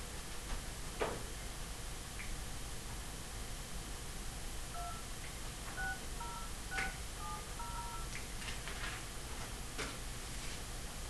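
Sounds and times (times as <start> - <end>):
touch-tone keypad beeps: 4.8 - 5.1, 5.8 - 8.2
phone clicks: 5.8 - 7.0.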